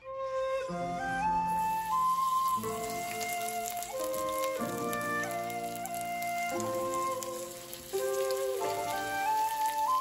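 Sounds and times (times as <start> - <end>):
flute-like background music: 0.0 - 10.0
batter sizzling in hot oil: 1.4 - 10.0.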